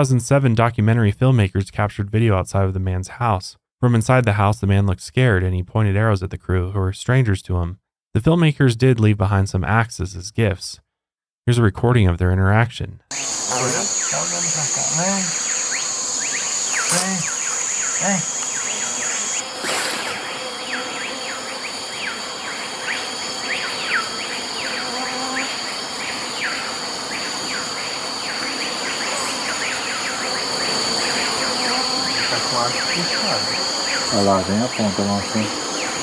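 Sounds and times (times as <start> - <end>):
sharp noise: 13.1 - 22.3
insects calling in high chorus: 13.1 - 36.0
low voices: 13.4 - 16.0, 16.8 - 19.3, 31.4 - 35.7.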